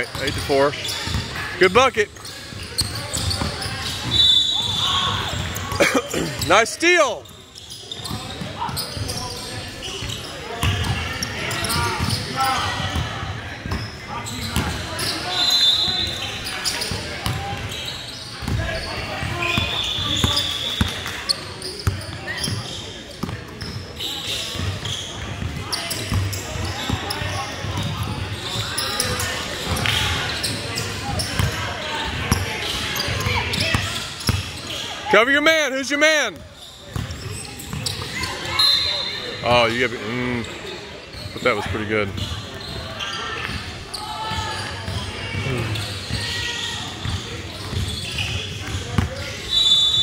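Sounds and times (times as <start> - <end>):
voices in echoing hall: 0.0 - 50.0
short high shoe squeaks: 2.2 - 5.4, 23.6 - 29.4, 36.6 - 39.3.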